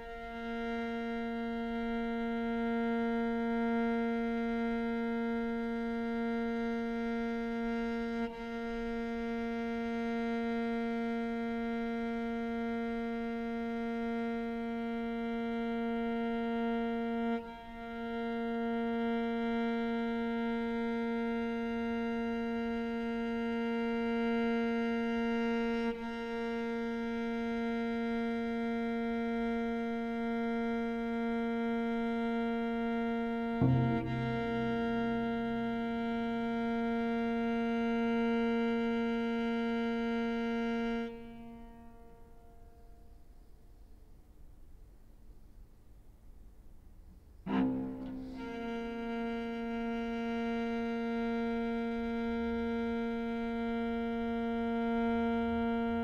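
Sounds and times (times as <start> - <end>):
cello holding bowed note: 0.0 - 43.1, 47.5 - 56.0.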